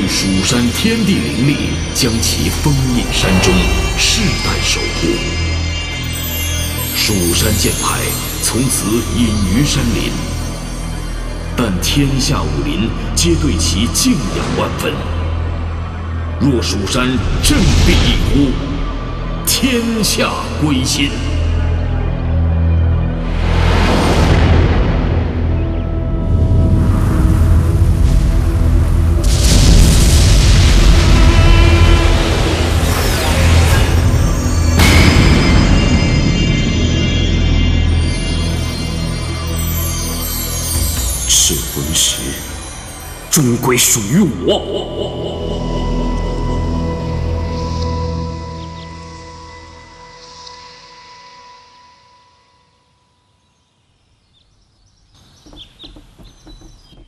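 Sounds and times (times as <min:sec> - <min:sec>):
soundtrack music: 0:00.0 - 0:52.1
dramatic film score: 0:00.0 - 0:53.3
rushing noise effect: 0:02.4 - 0:06.6
bird chirps: 0:53.1 - 0:57.0.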